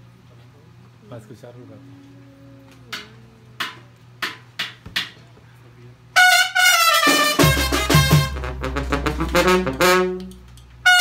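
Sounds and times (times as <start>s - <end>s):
brass band playing: 6.2s - 11.0s
deep sousaphone bass: 7.4s - 10.4s.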